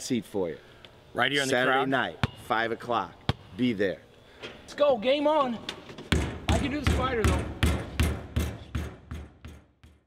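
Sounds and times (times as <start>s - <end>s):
basketball dribbling: 6.1s - 10.0s.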